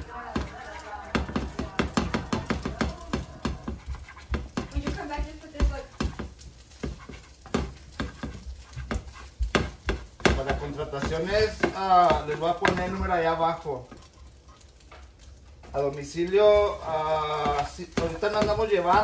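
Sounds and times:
spatula scraping frying pan: 0.0 - 13.2, 16.4 - 19.0.

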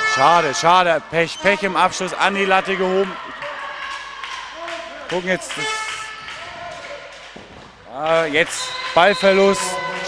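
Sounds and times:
steady hall noise: 0.0 - 10.0.

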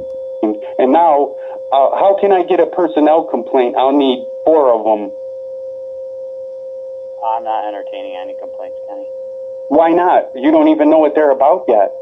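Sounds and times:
steady electronic tone: 0.0 - 12.0.

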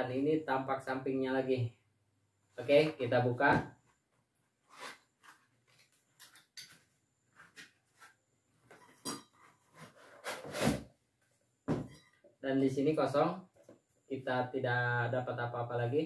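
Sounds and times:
pots scraping out of box: 8.9 - 10.9.

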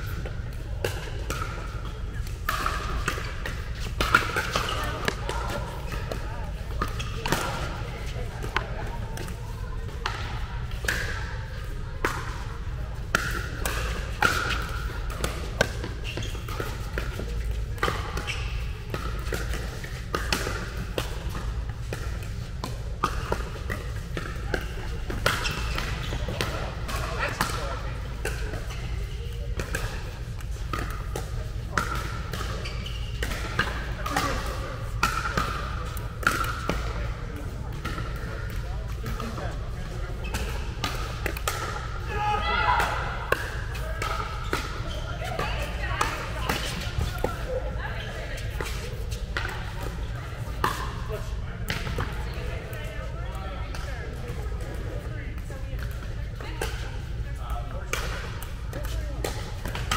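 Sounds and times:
ball bouncing on court: 0.0 - 11.2, 13.0 - 56.8, 57.4 - 59.9
players' voices: 0.0 - 59.9.

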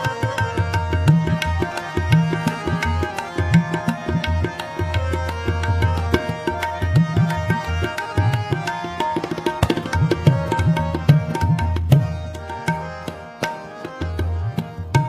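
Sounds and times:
harmonium melody and chords: 0.0 - 15.0
tabla rhythm: 0.0 - 15.0.

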